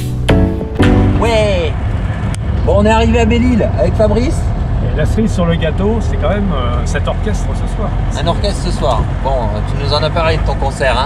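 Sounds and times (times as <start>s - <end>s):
car driving rumble: 0.6s - 11.0s.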